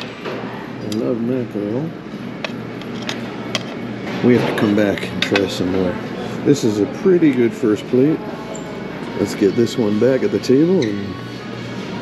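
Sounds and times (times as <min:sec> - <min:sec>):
restaurant hum and din: 0:00.0 - 0:12.0
tableware clinking: 0:04.4 - 0:05.6.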